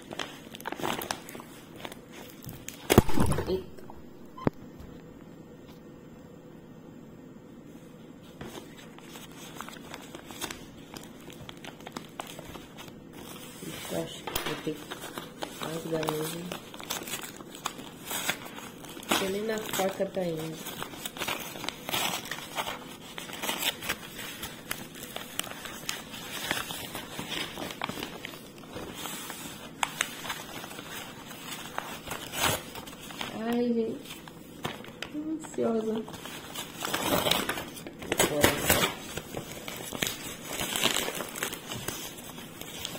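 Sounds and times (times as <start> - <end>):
paper and tape ripping: 36.1 - 42.9.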